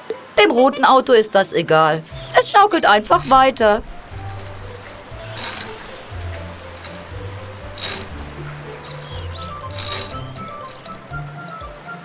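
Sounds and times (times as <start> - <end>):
playground swing squeaking: 2.0 - 12.0
cartoon music with low bass: 2.1 - 12.0.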